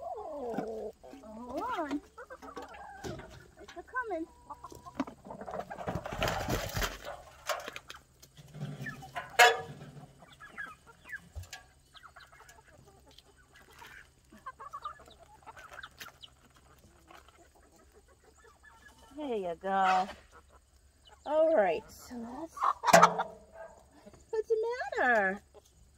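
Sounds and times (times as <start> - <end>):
chickens clucking: 0.0 - 25.9.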